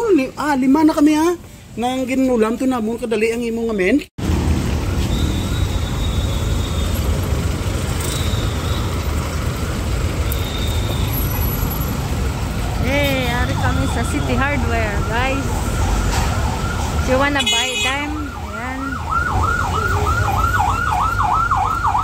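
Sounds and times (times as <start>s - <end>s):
street traffic rumble: 0.0s - 22.0s
emergency vehicle siren: 13.3s - 22.0s.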